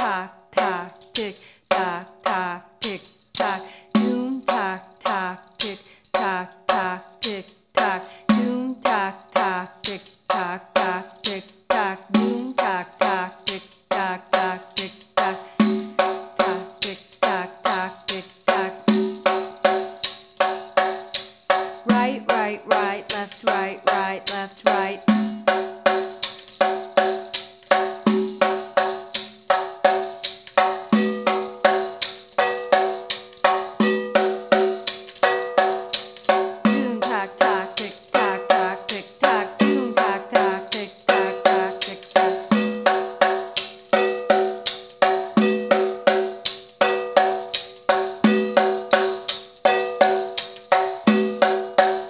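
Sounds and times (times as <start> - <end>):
tambourine strokes with jingles: 0.0 - 52.0.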